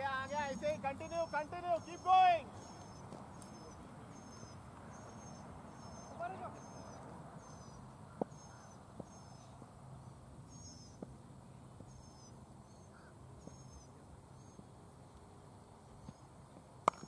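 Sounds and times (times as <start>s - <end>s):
high chirps: 0.0s - 9.6s.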